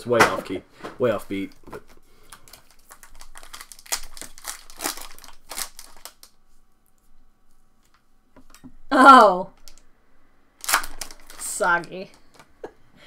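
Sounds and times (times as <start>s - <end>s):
plastic wrapper crinkling: 1.1s - 7.0s, 9.5s - 9.8s, 10.6s - 12.5s
wrapper torn open: 2.3s - 6.4s, 9.6s - 9.8s, 10.6s - 12.4s.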